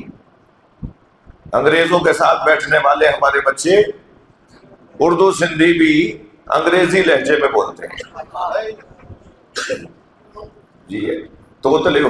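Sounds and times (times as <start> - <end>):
man coughing: 9.6 - 10.0.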